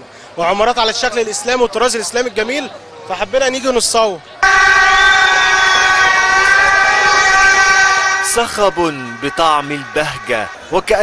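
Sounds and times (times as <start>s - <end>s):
loud steady horn tone: 4.4s - 11.0s.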